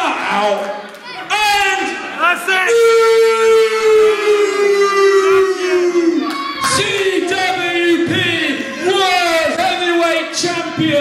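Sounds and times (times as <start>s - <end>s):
man yelling: 1.3s - 11.0s.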